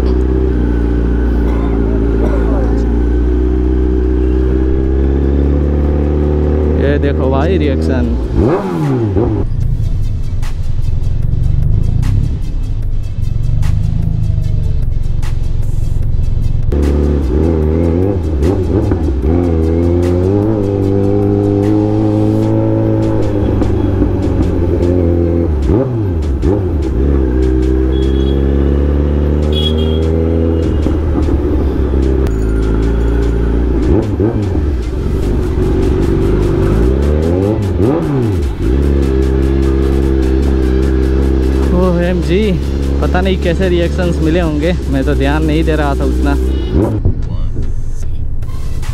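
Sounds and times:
motorcycle engine revving: 0:00.0 - 0:48.4
background music: 0:00.0 - 0:48.9.

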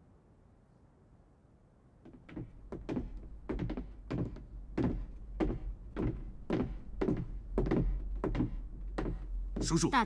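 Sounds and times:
boots walking on wooden floor: 0:02.0 - 0:10.0.

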